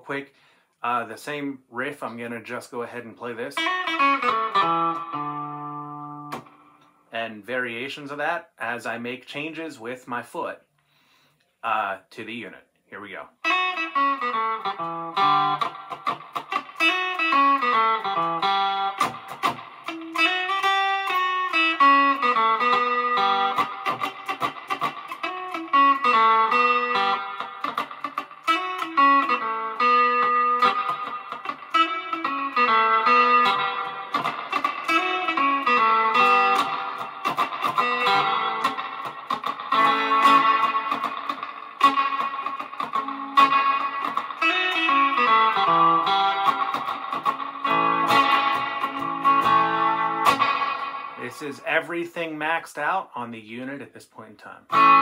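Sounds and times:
clean electric guitar riff with reverb: 3.6 - 7.0, 13.4 - 51.6, 54.7 - 55.0.

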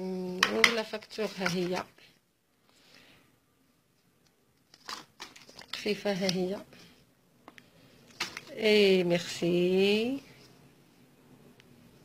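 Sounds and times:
person speaking: 0.0 - 2.1, 5.5 - 6.9, 8.2 - 10.5
paper crinkling and rustling: 4.6 - 6.0.

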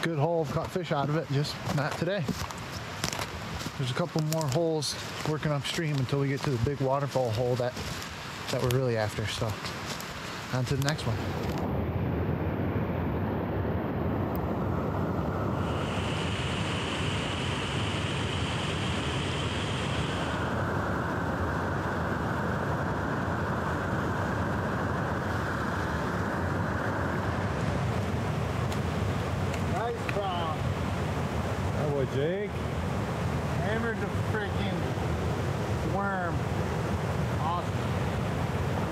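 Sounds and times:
stream water rushing: 0.0 - 11.6, 23.2 - 38.9
person's voice: 3.8 - 7.8, 10.5 - 11.2.

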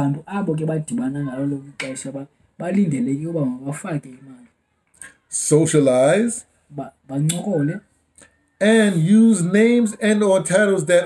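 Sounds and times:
man speaking: 0.0 - 8.0, 8.6 - 11.0.

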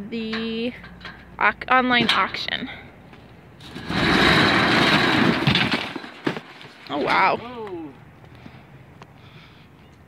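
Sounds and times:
steel roll-up door rattling: 3.6 - 7.0.

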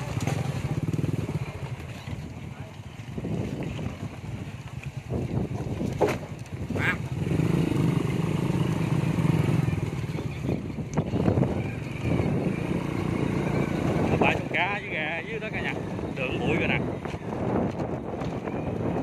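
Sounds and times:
small motorbike engine running: 0.0 - 5.4, 6.5 - 19.0
sharp knocks from bumps: 5.5 - 6.4.

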